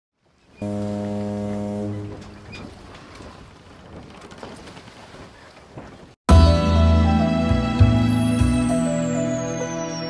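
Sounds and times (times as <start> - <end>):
ship's horn blast: 0.6 - 2.8.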